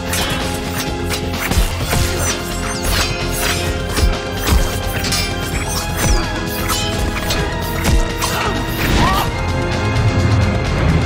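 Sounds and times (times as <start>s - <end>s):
blades clashing with metallic ringing: 0.0s - 9.4s
driving film score: 0.0s - 11.0s.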